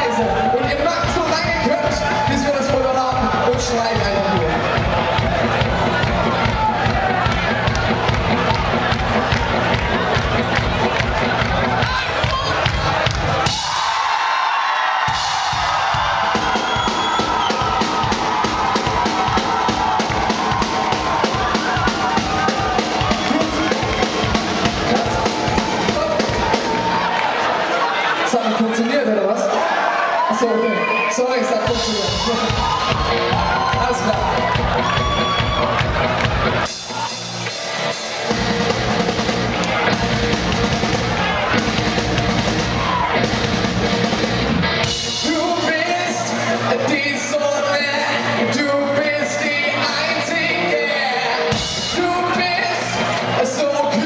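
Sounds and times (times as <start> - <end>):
live rock band playing: 0.0 - 14.1, 14.9 - 29.4, 30.7 - 54.0
drum kit beat: 0.0 - 14.2, 14.8 - 27.4, 31.6 - 54.0
lead singer: 45.0 - 54.0.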